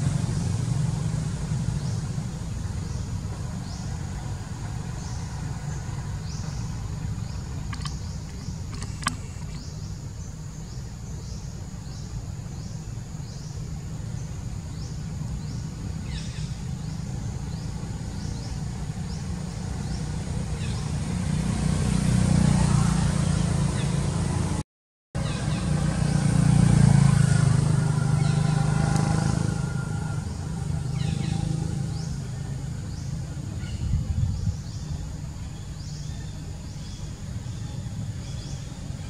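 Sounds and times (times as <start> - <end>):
road traffic rumble: 0.0 - 24.6, 25.2 - 39.0.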